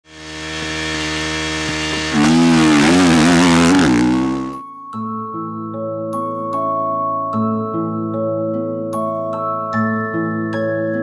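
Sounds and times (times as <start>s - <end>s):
motocross bike engine revving: 0.0s - 4.6s.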